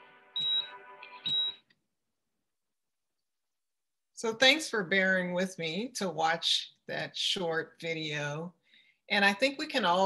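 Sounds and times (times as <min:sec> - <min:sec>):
high electronic beeps: 0:00.4 - 0:01.6.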